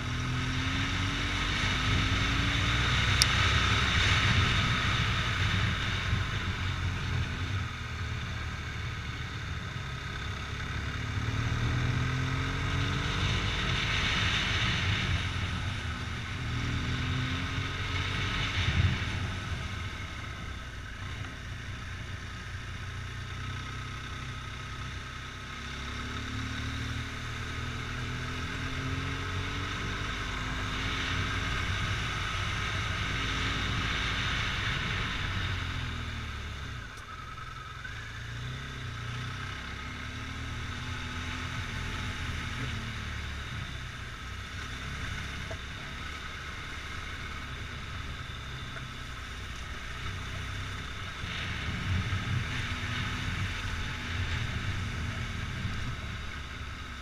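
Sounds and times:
wind rushing on camera: 0.0s - 23.9s, 25.7s - 57.0s
motorcycle engine revving: 0.0s - 57.0s.

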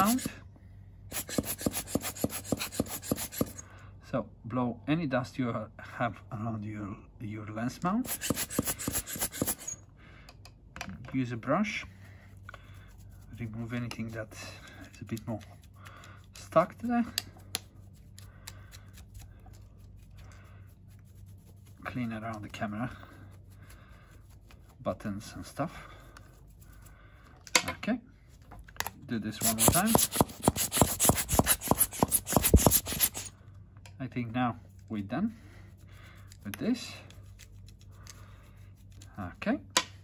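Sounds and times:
brush rubbing on camera: 0.0s - 0.4s, 1.1s - 3.6s, 8.0s - 9.7s, 12.7s - 15.8s, 16.5s - 18.2s, 18.9s - 26.9s, 29.4s - 33.3s, 35.6s - 39.3s
rubber bulb blower puffing air: 0.0s - 0.4s, 1.1s - 3.6s, 8.0s - 9.7s, 29.4s - 33.3s.

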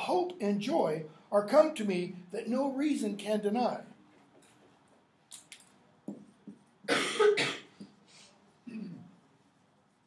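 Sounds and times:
man coughing: 6.9s - 7.8s.

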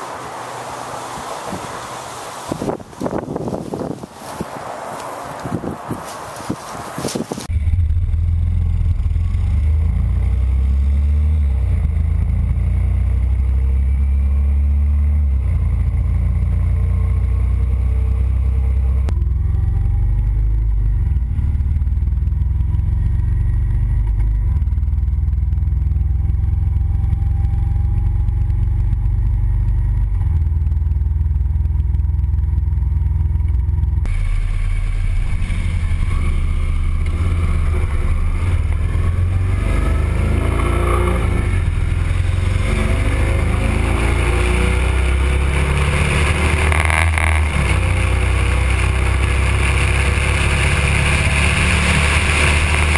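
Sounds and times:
motorcycle engine drone: 0.0s - 52.9s
wind rumble on microphone: 2.4s - 10.0s.

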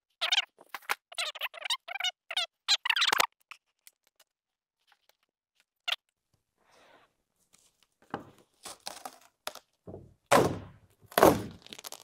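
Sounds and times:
squeaky crackling scrapes: 0.1s - 3.7s.

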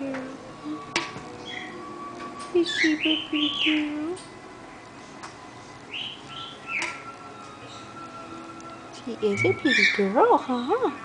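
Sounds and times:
parrot chirps: 1.4s - 1.8s, 5.9s - 7.1s, 9.4s - 10.1s.

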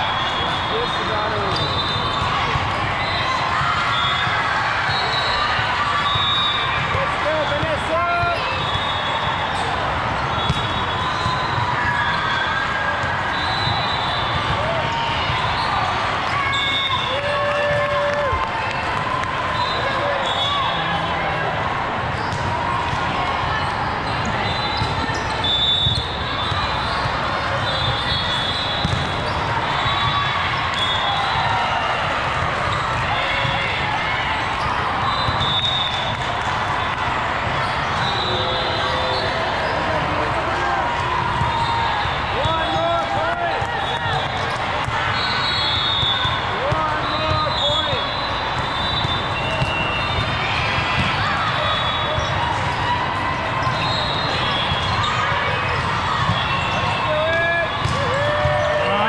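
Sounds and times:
hubbub of many voices: 0.0s - 59.0s
sneakers squeaking on court: 8.4s - 14.6s, 22.1s - 22.6s, 23.6s - 30.2s, 37.6s - 40.1s, 43.8s - 53.0s
volleyballs thudding: 28.7s - 29.4s.

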